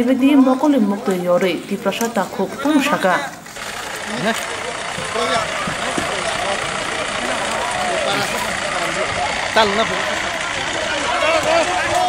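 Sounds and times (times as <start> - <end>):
bus diesel engine running: 0.0 - 12.0.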